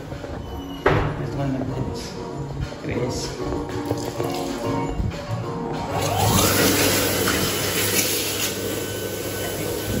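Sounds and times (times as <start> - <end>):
hand dryer running: 5.8 - 10.0.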